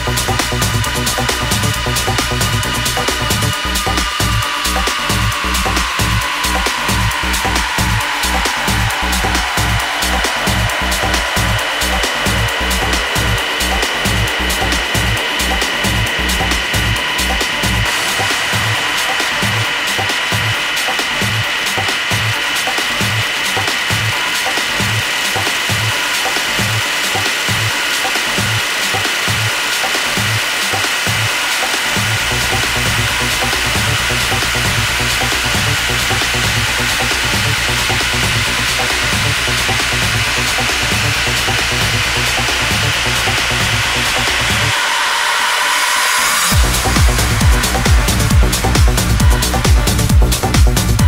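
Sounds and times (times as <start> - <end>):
low bass: 0.0 - 44.8, 46.5 - 51.0
techno kick drum: 0.0 - 44.8, 46.5 - 51.0
sweeping synth tone: 0.0 - 50.5
fast high percussion: 0.0 - 51.0.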